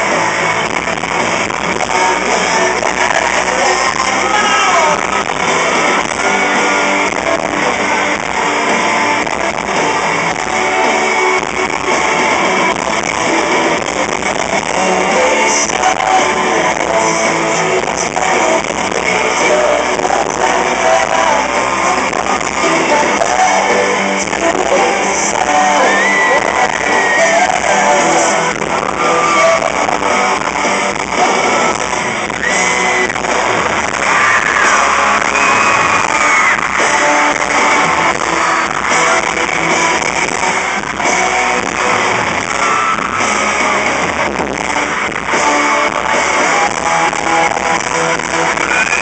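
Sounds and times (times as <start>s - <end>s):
fans screaming: 0.0s - 49.0s
live pop-rock band playing: 0.0s - 49.0s.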